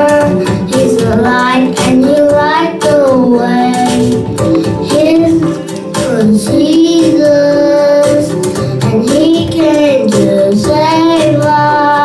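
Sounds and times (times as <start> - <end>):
boy singing into a microphone: 0.0 - 12.0.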